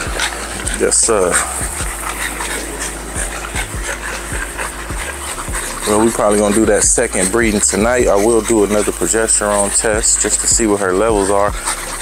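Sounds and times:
dogs panting: 0.0s - 12.0s.

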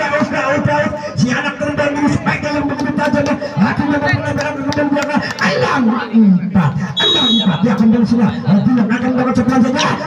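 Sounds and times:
people talking: 0.0s - 10.0s
referee's whistle blast: 7.0s - 7.6s.

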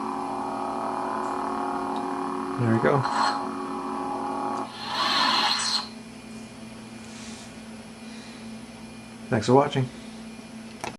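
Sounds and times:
lightsaber hum: 0.0s - 7.4s
lightsaber hissing whoosh: 4.7s - 5.9s.

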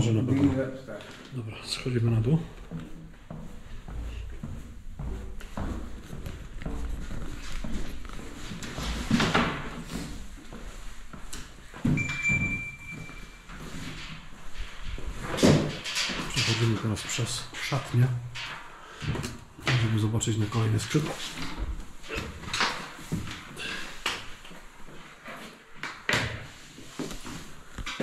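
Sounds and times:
footsteps on stairs and tiles: 0.0s - 28.0s
steady high tone: 12.0s - 13.5s.

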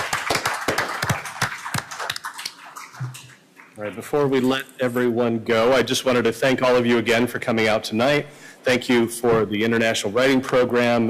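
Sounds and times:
audience applause: 0.0s - 3.3s.

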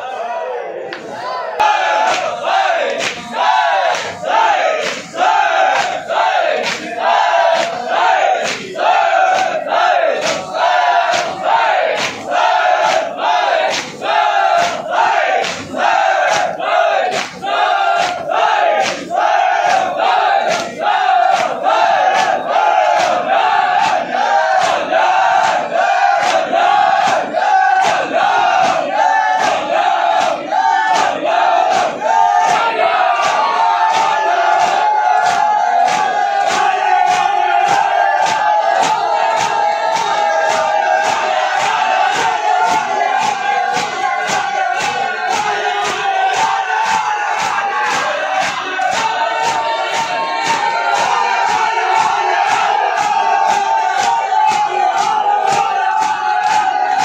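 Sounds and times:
men chanting together: 0.0s - 57.0s
hands beating chests: 0.9s - 57.0s.

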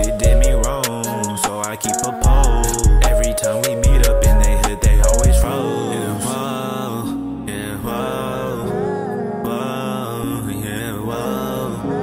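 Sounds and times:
hip-hop beat: 0.0s - 6.5s.

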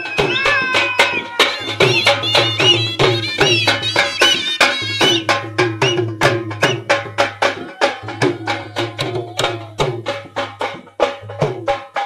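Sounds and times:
dhol drums beating fast: 0.0s - 12.0s.

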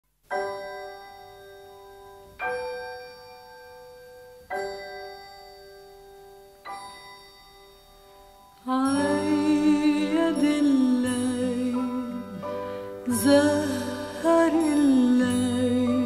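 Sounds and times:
bell-like chimes ringing: 0.3s - 16.0s.

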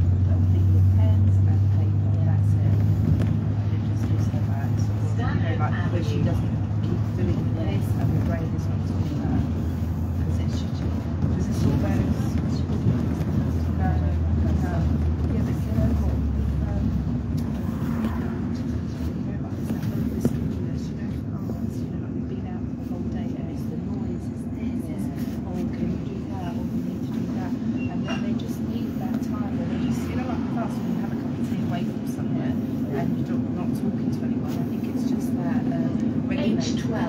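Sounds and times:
bus engine and road rumble: 0.0s - 37.0s
muffled voices talking: 0.0s - 37.0s.

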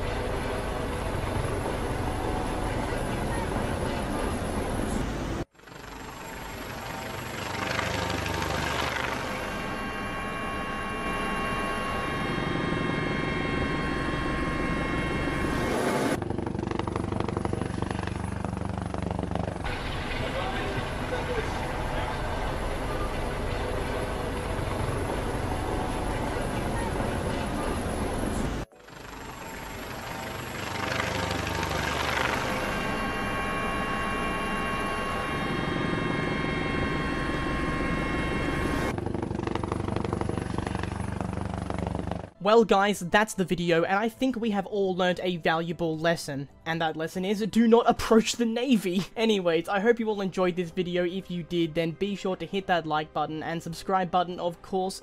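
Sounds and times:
helicopter engine and rotor: 0.0s - 42.4s.

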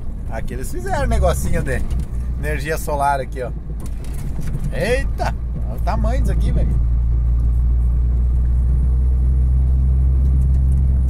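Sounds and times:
diesel engine and road drone: 0.0s - 11.0s.

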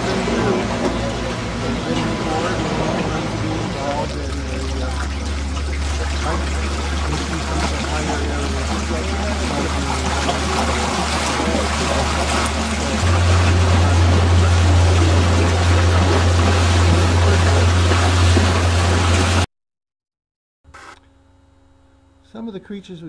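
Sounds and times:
wind: 0.0s - 19.4s
boat motor running: 0.0s - 19.5s
rushing water: 0.0s - 19.5s.

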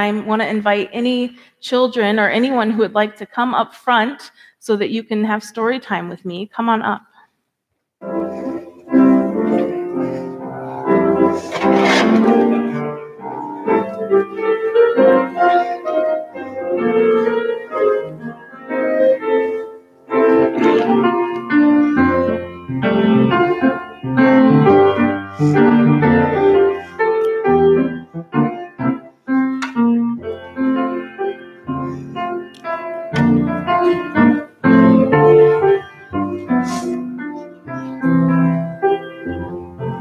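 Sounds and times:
piano piece: 8.0s - 40.0s.

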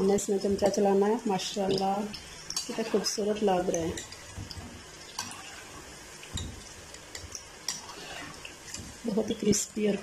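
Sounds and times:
florets deep-frying in oil: 0.0s - 10.0s.

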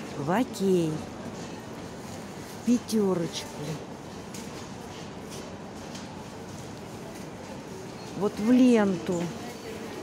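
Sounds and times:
store hum: 0.0s - 10.0s.

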